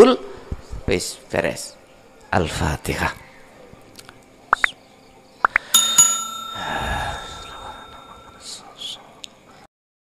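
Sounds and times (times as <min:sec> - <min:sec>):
bell ringing: 0:05.8 - 0:08.7.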